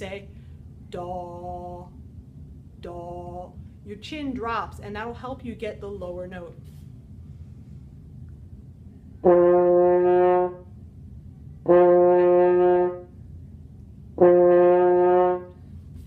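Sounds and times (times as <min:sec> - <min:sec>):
french horn low note: 0:09.2 - 0:10.8, 0:11.6 - 0:13.2, 0:14.2 - 0:15.7.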